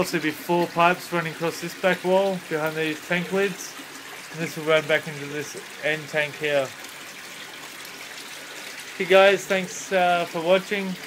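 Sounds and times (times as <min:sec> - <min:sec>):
water trickling in tank: 0:00.0 - 0:11.0.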